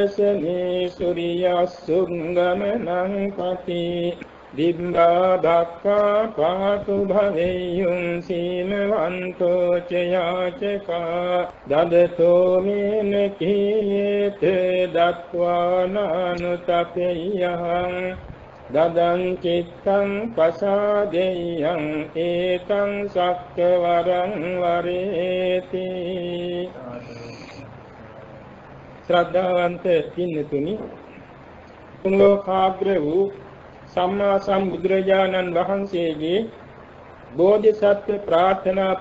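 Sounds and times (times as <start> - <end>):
man chanting verses: 0.0 - 27.7, 29.0 - 31.4, 32.0 - 39.0.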